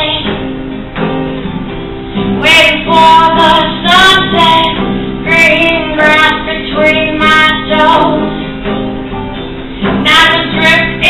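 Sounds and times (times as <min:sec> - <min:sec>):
woman singing: 0:00.0 - 0:00.4, 0:02.4 - 0:08.5, 0:09.8 - 0:11.0
acoustic guitar: 0:00.0 - 0:11.0.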